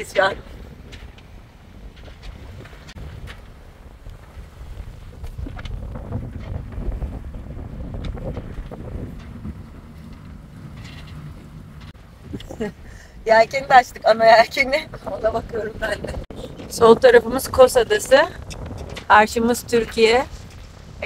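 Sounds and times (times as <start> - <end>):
wind rumbling on microphone: 0.0 - 21.0.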